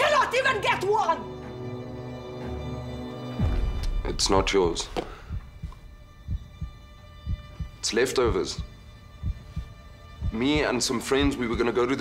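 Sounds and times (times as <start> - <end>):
low heartbeat-like thuds: 3.4 - 11.7
faint steady drone: 5.2 - 11.7.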